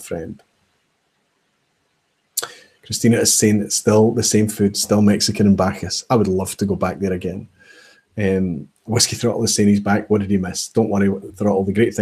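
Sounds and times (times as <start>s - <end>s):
man speaking: 0.0s - 0.4s, 2.4s - 7.6s, 8.2s - 12.0s.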